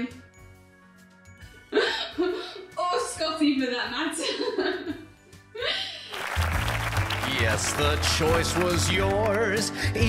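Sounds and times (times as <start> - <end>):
woman laughing: 1.8 - 2.7, 4.0 - 6.2.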